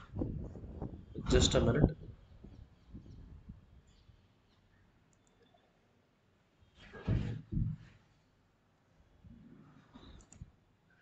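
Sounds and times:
faint clicks: 5.1s - 5.6s, 10.0s - 10.5s.

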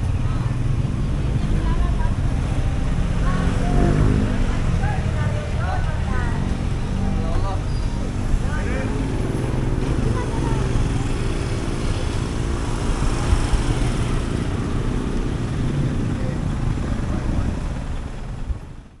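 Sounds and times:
cars passing: 0.0s - 19.0s
motorcycle engines running: 0.0s - 19.0s.

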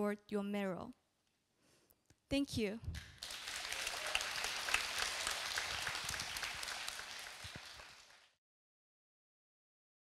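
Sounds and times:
audience applauding: 3.0s - 8.4s.

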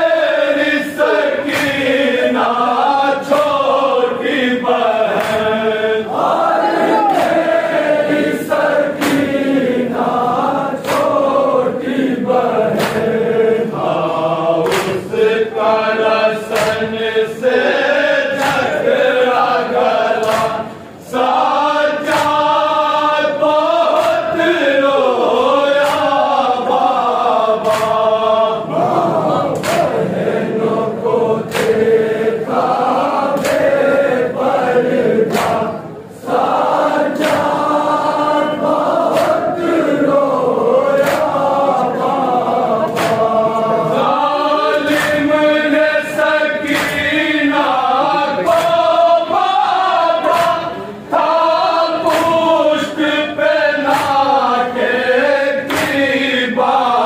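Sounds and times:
men chanting in unison: 0.0s - 57.0s
hands slapping chests: 1.4s - 1.9s, 3.2s - 3.8s, 5.1s - 5.6s, 6.9s - 7.6s, 8.9s - 9.5s, 10.8s - 11.3s, 12.7s - 13.2s, 14.6s - 15.1s, 16.5s - 16.9s, 18.3s - 18.9s, 20.1s - 20.7s, 22.0s - 22.6s, 23.8s - 24.5s, 25.8s - 26.4s, 27.6s - 28.2s, 29.4s - 30.2s, 31.4s - 32.7s, 33.3s - 34.0s, 34.9s - 35.8s, 37.1s - 37.8s, 38.8s - 39.7s, 40.8s - 41.5s, 42.8s - 43.4s, 44.7s - 45.3s, 46.6s - 47.2s, 48.4s - 49.0s, 50.2s - 50.8s, 52.0s - 52.5s, 53.8s - 54.5s, 55.6s - 56.3s.

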